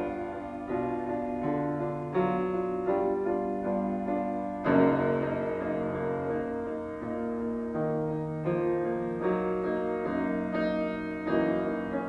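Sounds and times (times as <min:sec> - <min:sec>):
solo classical grand piano: 0:00.0 - 0:12.0.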